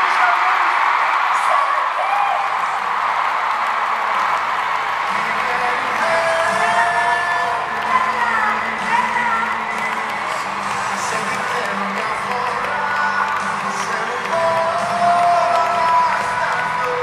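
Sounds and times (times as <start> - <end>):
crowd cheering and screaming: 0.0 - 17.0
music: 4.9 - 17.0.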